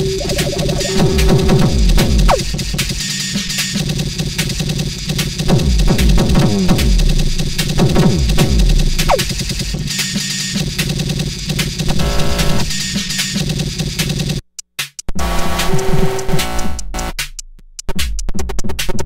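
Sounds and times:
falling synth tone: 0.0 - 2.4
electronic synthesizer beat: 0.0 - 10.8, 11.6 - 13.4, 15.2 - 17.4
fast electronic stutter: 0.0 - 11.1.

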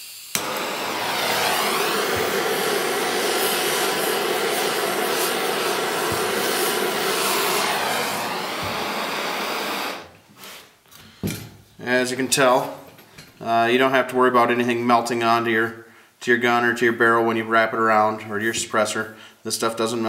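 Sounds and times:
blowtorch ignition click: 0.0 - 10.1
blowtorch flame rushing: 0.3 - 10.2.

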